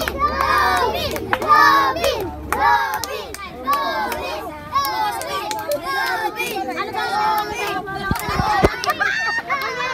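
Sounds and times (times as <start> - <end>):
hand claps: 0.0 - 6.6, 7.4 - 9.9
children talking and calling out: 0.0 - 9.9.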